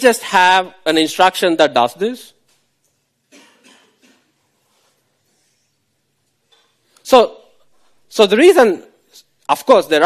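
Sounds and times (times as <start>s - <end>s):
faint coughing: 3.3s - 4.4s.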